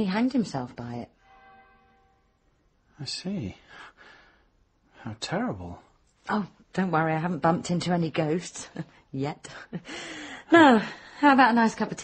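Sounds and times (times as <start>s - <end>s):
faint bell stroke: 1.0s - 2.6s.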